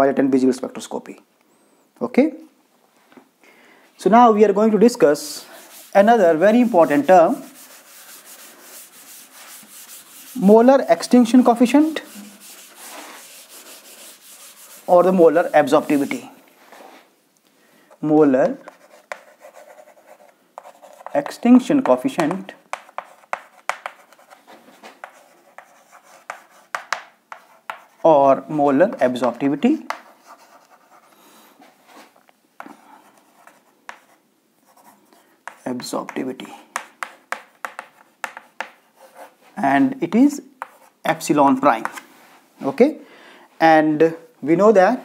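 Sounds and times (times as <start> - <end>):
chalk scratching on chalkboard: 5.2 - 16.4, 18.4 - 28.1, 28.9 - 31.2, 31.9 - 39.5, 40.6 - 42.0
duster scrubbing chalkboard: 5.2 - 16.9
chalk tap: 5.6 - 16.3, 18.4 - 28.0, 28.9 - 31.0, 33.3 - 34.2, 34.8 - 39.3, 40.6 - 41.0, 41.8 - 42.0.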